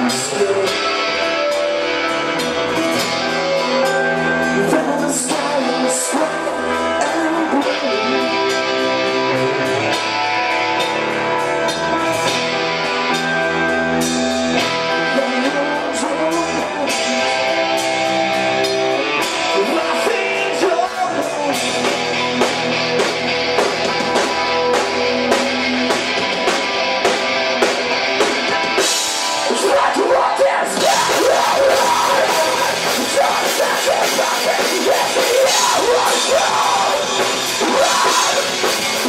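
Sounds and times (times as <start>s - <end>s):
person singing: 0.0s - 1.8s, 2.6s - 10.0s, 14.6s - 22.5s, 29.4s - 39.0s
bass guitar: 0.0s - 39.0s
drums: 0.0s - 39.0s
electric guitar: 0.0s - 39.0s.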